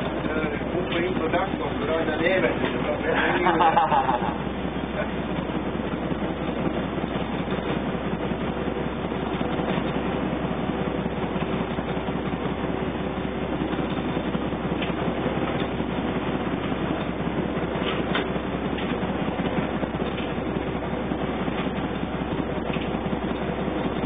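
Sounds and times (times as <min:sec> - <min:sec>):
diesel engine running steadily: 0:00.0 - 0:24.0.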